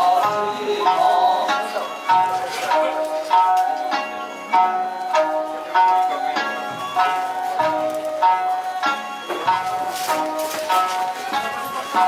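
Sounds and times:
person singing: 0:00.0 - 0:03.0
plucked lute rhythm: 0:00.0 - 0:12.0.

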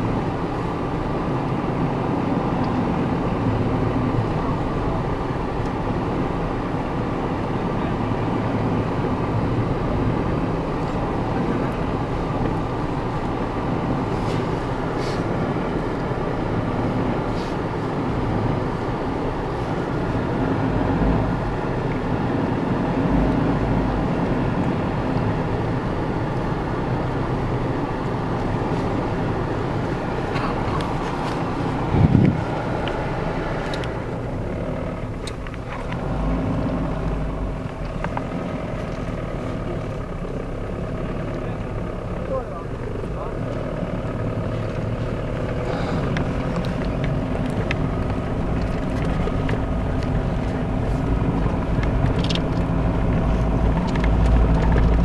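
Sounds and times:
vehicle engine running: 0:00.0 - 0:55.0.

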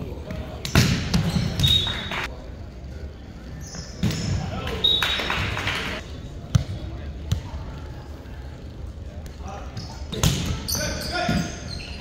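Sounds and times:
echoing gym noise: 0:00.0 - 0:12.0
high squeak: 0:10.7 - 0:12.0.

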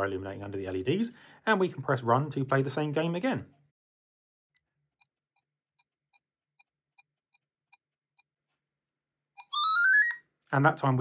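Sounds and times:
rising stepped tones: 0:09.4 - 0:10.2.

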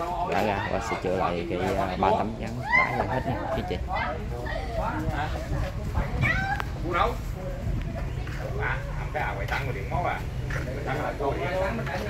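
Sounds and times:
people talking indistinctly: 0:00.0 - 0:12.0.

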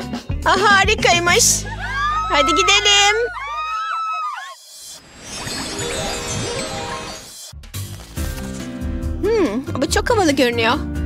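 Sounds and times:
upbeat background music: 0:00.0 - 0:03.3, 0:05.2 - 0:11.0
women whooping and squealing: 0:01.5 - 0:04.8.

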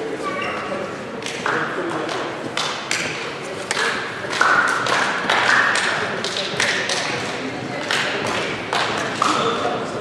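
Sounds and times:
indistinct voices in sports hall: 0:00.0 - 0:10.0.

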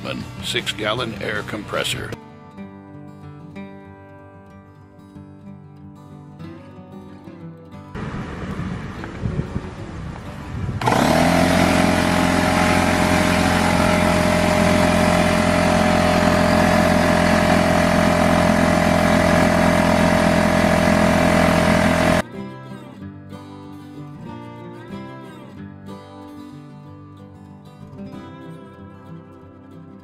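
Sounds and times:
air compressor running: 0:10.8 - 0:22.2.

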